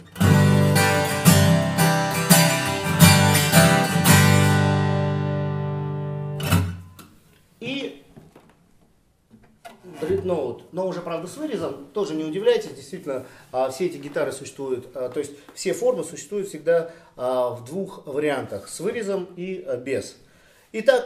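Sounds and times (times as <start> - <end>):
acoustic guitar strummed chords: 0.0 - 7.0.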